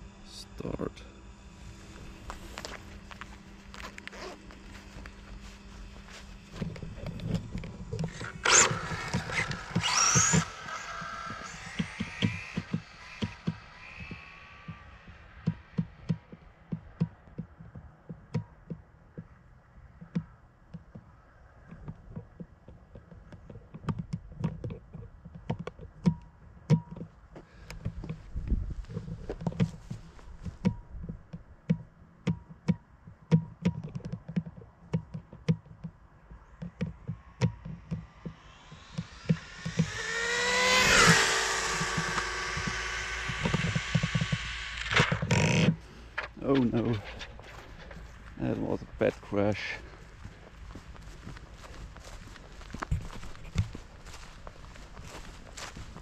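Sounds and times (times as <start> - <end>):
electric motor whine: 0.0 - 18.8, 36.2 - 56.0
sharp clicks and taps: 30.5 - 40.1.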